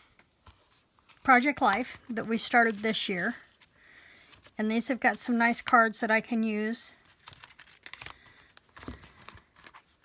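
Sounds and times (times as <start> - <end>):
paper cards rustling: 0.4 - 6.1, 7.0 - 10.0.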